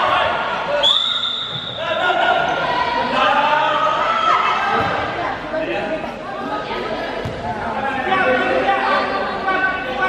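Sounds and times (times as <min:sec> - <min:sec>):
high whistle blast: 0:00.8 - 0:01.8.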